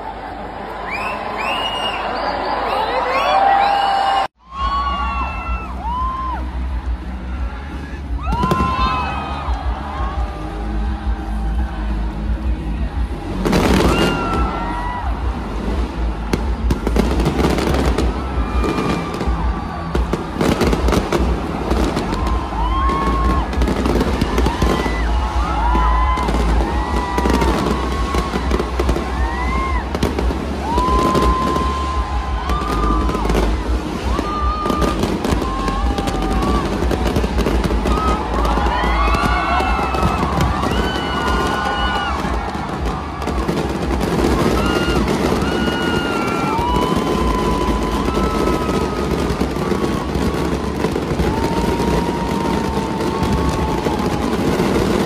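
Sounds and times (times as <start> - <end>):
music playing: 0.0 - 55.0
fireworks bangs and crackles: 4.6 - 55.0.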